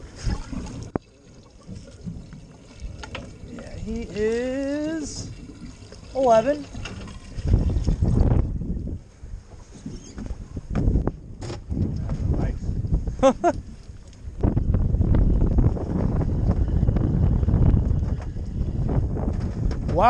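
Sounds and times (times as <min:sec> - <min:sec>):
wind buffeting microphone: 0:01.8 - 0:20.0
knocks on a boat: 0:10.2 - 0:12.2.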